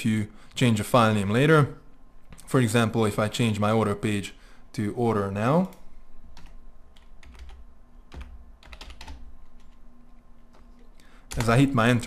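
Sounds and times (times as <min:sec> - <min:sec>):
typing on computer keyboard: 0:06.4 - 0:09.8, 0:11.3 - 0:11.6.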